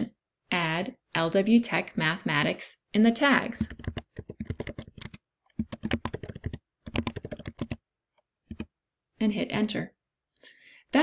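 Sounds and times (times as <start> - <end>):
typing on computer keyboard: 3.6 - 7.8, 8.5 - 8.7.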